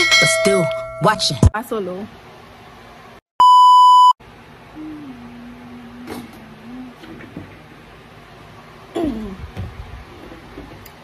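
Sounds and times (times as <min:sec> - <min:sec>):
loud electronic beep: 0:03.4 - 0:04.2
faint low hum: 0:04.6 - 0:07.8.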